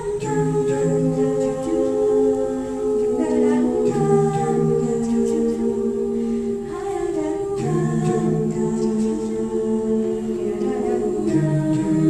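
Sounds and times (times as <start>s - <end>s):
vocal ensemble singing a cappella: 0.0s - 12.0s.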